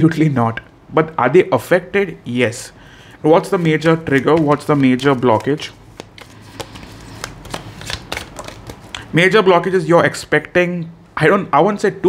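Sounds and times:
cards shuffling and flicking: 0:03.4 - 0:09.1.

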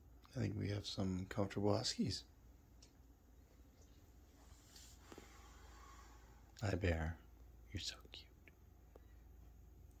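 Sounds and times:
steady low hum: 0:00.0 - 0:10.0
faint whispered voice: 0:07.7 - 0:08.5.

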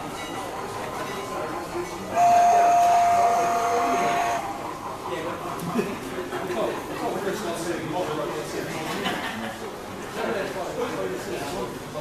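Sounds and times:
model steam whistle blast: 0:02.1 - 0:04.4.

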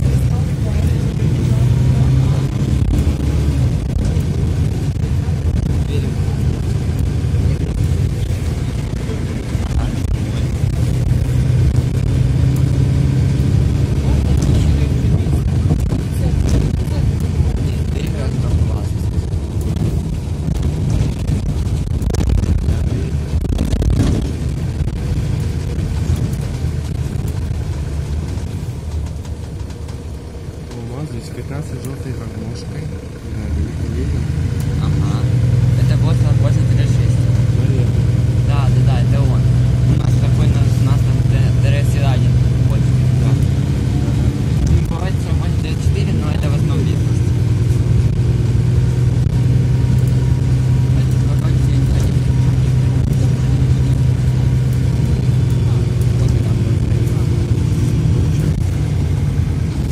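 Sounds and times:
bus engine and road rumble: 0:00.0 - 0:59.9.

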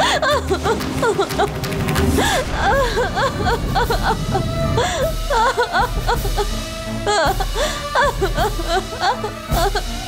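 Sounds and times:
woman sobbing and gasping: 0:00.0 - 0:10.0.

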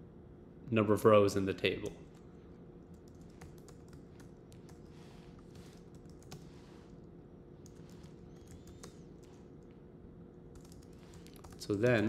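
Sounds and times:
typing on keyboard: 0:02.8 - 0:06.5, 0:07.6 - 0:09.7, 0:10.5 - 0:12.0.

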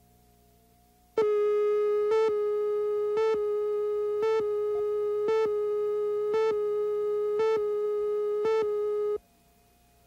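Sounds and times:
faint tape hum: 0:00.0 - 0:10.0
steady countdown tone: 0:01.2 - 0:09.2.

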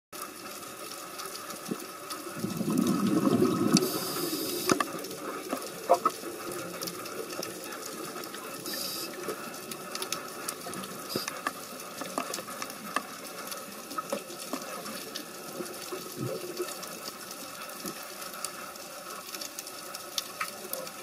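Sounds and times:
underwater rush of water: 0:00.2 - 0:21.0.

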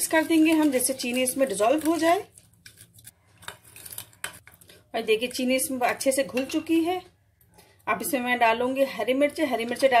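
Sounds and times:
plastic spoon stirring liquid: 0:00.0 - 0:06.6.

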